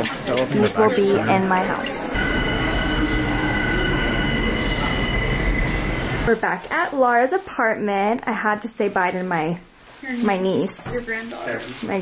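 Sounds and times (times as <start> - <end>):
subway train rumble: 0.7 - 7.8
high squeal of train wheels: 1.9 - 6.4.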